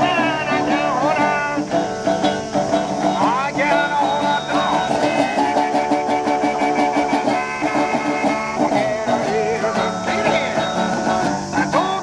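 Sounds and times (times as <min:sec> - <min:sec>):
harmonica: 0:00.0 - 0:12.0
resonator guitar: 0:00.0 - 0:12.0.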